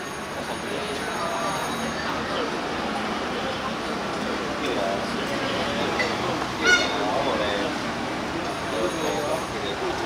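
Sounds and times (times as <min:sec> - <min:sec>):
street noise: 0:00.0 - 0:10.0
voices: 0:00.2 - 0:10.0
short high-pitched honk: 0:06.6 - 0:07.0.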